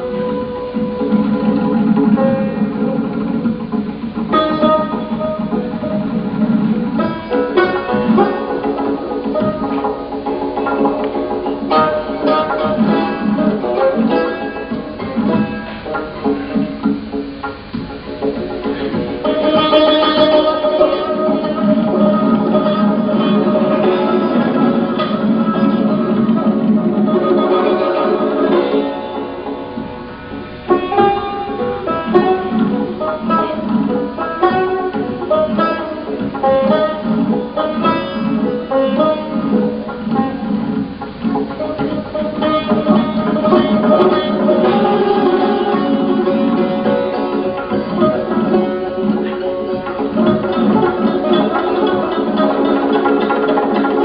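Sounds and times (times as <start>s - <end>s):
plucked lute melody: 0.0s - 54.0s.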